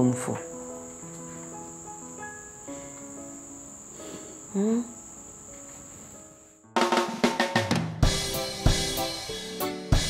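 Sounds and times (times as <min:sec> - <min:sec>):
crickets chirping: 0:00.0 - 0:06.7.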